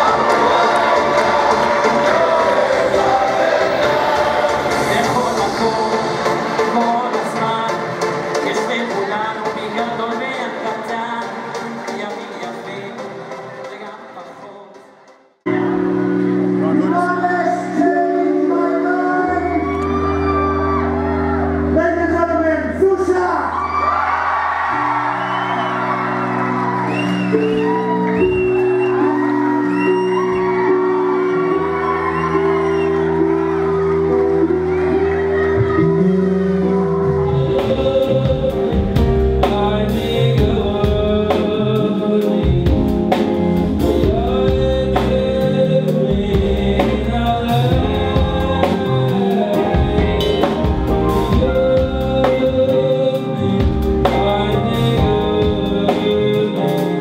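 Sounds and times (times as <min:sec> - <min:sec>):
audience whooping: 0:00.0 - 0:05.9, 0:19.3 - 0:21.8, 0:23.2 - 0:38.2, 0:48.1 - 0:52.7
man singing into microphone: 0:00.0 - 0:14.8, 0:37.0 - 0:57.0
keyboard chords: 0:00.0 - 0:57.0
live band playing: 0:00.0 - 0:57.0
bass line: 0:19.2 - 0:57.0.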